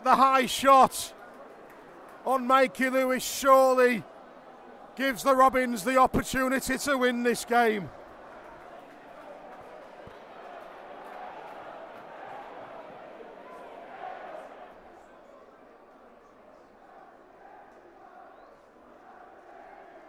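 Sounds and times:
stadium crowd hubbub: 0:00.0 - 0:20.0.

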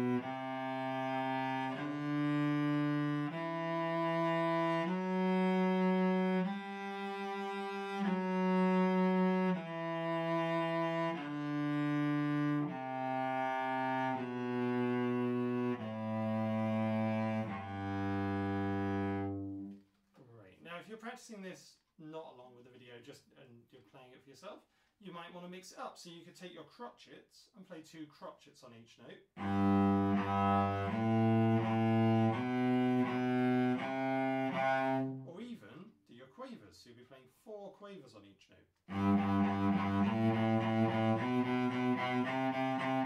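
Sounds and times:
cello playing a scale: 0:00.0 - 0:19.8, 0:29.4 - 0:35.3, 0:38.9 - 0:43.0.

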